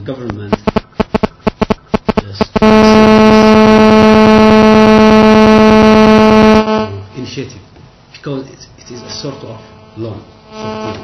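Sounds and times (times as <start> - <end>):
loud electronic buzz: 0.5 - 7.2, 8.9 - 11.0.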